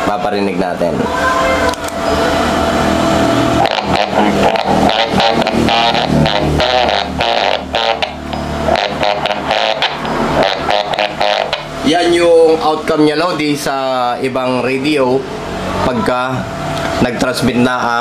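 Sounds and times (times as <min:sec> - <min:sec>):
distorted radio audio: 0:03.6 - 0:12.2.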